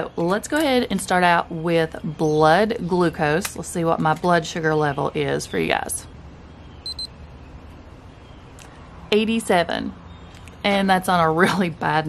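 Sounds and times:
faint low background hum: 0:00.0 - 0:12.0
high-pitched electronic beep: 0:06.8 - 0:07.2.

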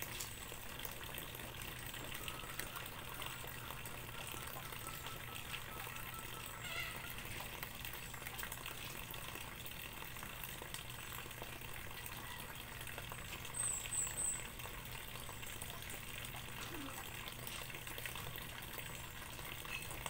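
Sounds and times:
water splashing and sloshing: 0:00.0 - 0:20.0.

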